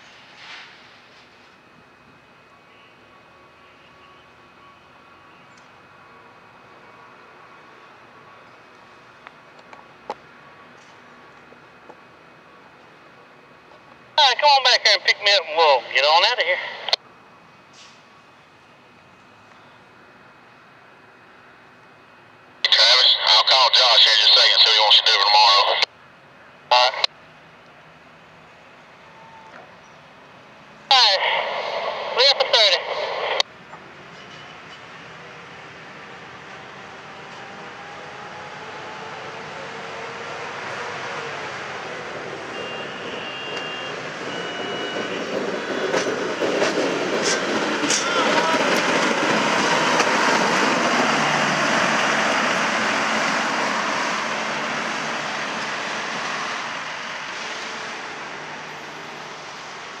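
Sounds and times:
truck engine and wheels on rails: 33.5 - 60.0.

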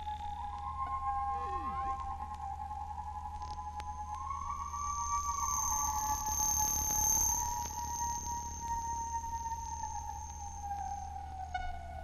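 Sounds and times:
sustained electronic tones: 0.8 - 2.2
thin high whistling tone: 0.9 - 2.1, 4.2 - 11.5.

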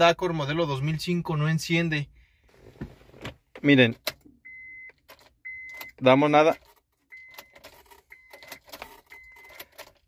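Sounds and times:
dashboard warning chime: 4.3 - 6.2, 7.1 - 9.7.

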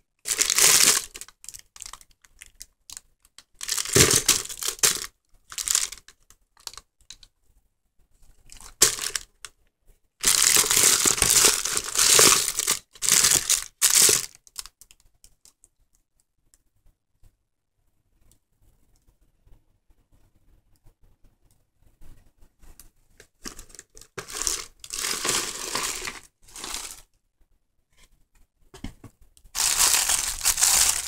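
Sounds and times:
candy wrappers crinkling: 0.2 - 6.8, 8.5 - 9.3, 10.2 - 15.0, 23.4 - 27.0, 29.5 - 31.0.

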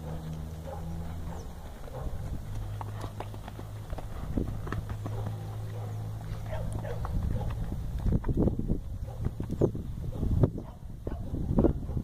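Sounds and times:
hoofbeats on dirt: 0.0 - 12.0
steady low hum: 0.0 - 12.0.

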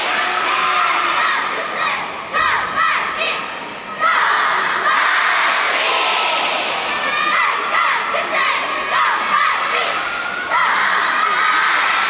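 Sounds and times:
crowd of young voices cheering: 4.0 - 12.0.

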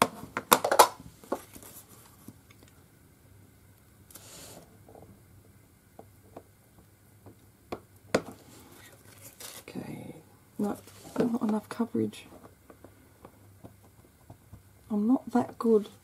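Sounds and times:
person's voice: 9.7 - 12.4, 14.9 - 16.0.

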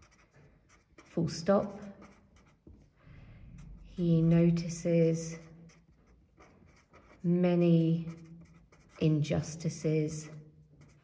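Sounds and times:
felt-tip pen scratching on paper: 0.0 - 2.9, 3.6 - 11.0.

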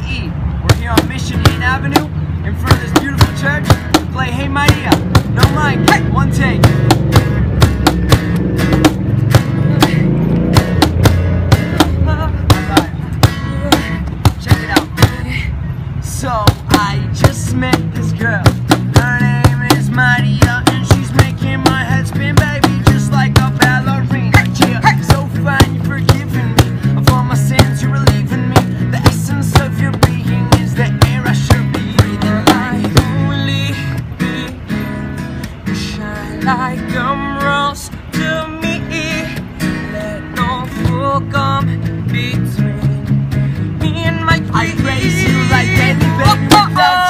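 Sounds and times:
cajon beat: 0.6 - 15.4, 16.1 - 47.0
bass guitar: 0.6 - 35.9, 39.3 - 47.0
acoustic guitar: 0.6 - 47.0
voices singing: 43.8 - 47.0.

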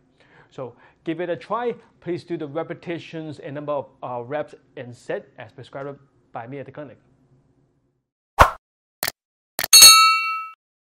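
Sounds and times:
bright bell-like ding: 9.7 - 10.6.

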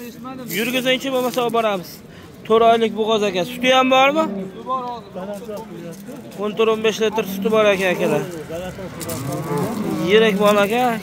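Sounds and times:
men talking: 0.0 - 11.0
cow mooing: 7.0 - 8.3, 9.0 - 10.7.

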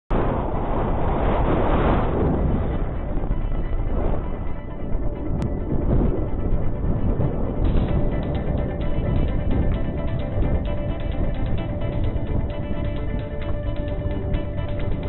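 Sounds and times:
wind noise on microphone: 0.1 - 15.0
background music: 2.2 - 15.0.

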